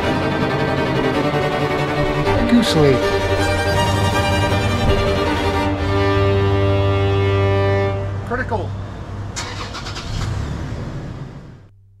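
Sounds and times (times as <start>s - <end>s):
car engine humming: 0.0s - 12.0s.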